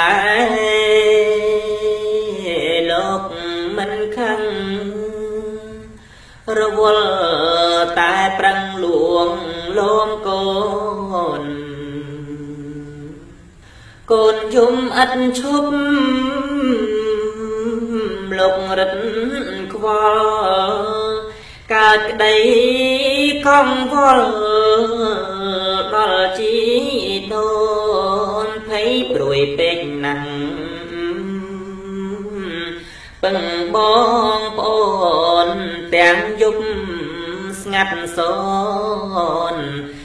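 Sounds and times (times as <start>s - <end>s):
man chanting: 0.0s - 5.9s, 6.5s - 13.4s, 14.1s - 39.9s.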